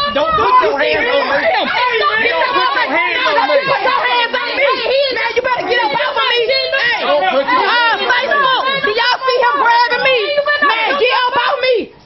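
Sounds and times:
people arguing loudly: 0.0s - 12.0s.

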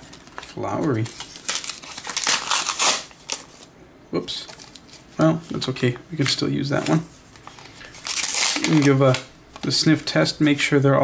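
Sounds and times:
paper cards rustling: 0.0s - 3.7s, 4.3s - 10.8s.

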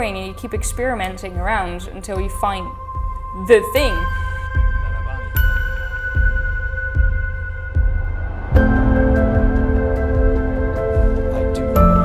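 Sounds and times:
deep heartbeat-like pulse: 0.0s - 12.0s.

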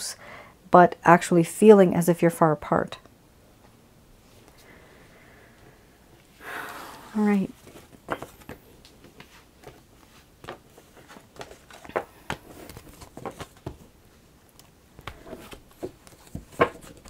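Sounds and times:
cards stacked on cloth-covered table: 6.4s - 17.0s.

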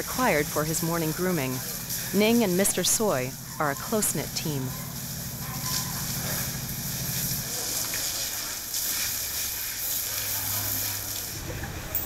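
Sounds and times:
low hum: 0.0s - 7.7s
water spraying from a hose: 0.0s - 11.9s.

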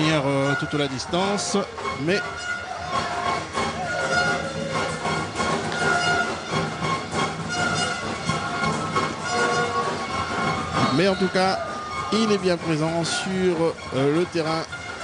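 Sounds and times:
crowd hubbub: 0.0s - 15.0s
horns blown in stands: 0.0s - 15.0s.

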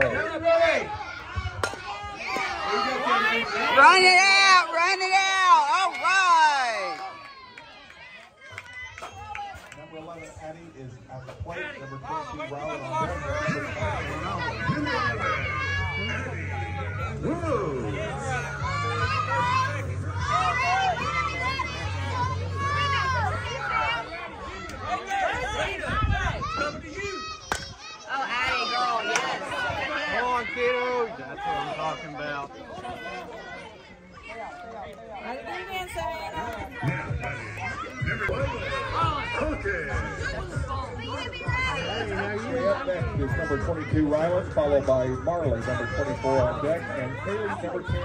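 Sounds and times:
chatter of voices: 0.0s - 48.0s
bat cracking a ball: 1.6s - 2.5s, 27.5s - 27.8s.

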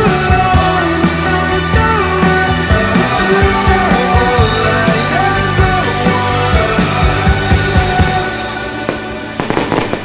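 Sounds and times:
background music: 0.0s - 10.0s
fireworks bangs and crackles: 8.8s - 10.0s.

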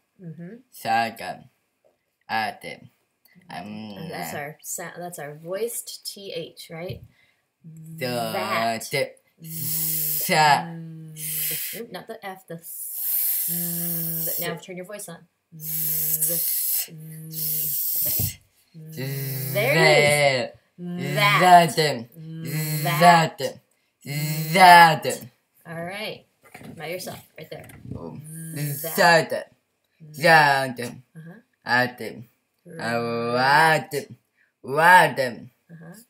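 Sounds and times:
boy sounding out a word: 3.5s - 4.5s, 7.7s - 8.8s, 9.4s - 14.7s, 15.6s - 23.5s, 24.1s - 25.2s, 26.6s - 29.3s
child voicing a th sound: 7.7s - 8.7s, 9.4s - 12.0s, 15.6s - 23.3s, 27.0s - 29.1s.

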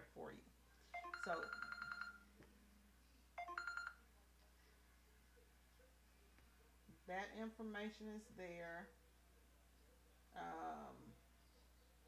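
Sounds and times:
electronic ringtone: 1.0s - 2.3s, 3.4s - 4.0s.

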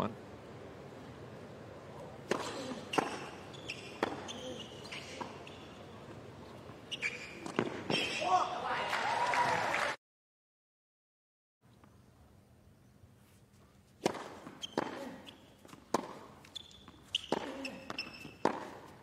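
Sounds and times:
tennis ball hits: 2.2s - 4.4s, 14.0s - 19.0s.

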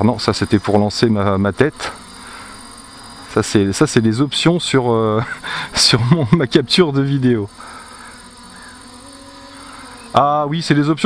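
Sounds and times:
quadcopter motors humming: 0.0s - 11.0s.

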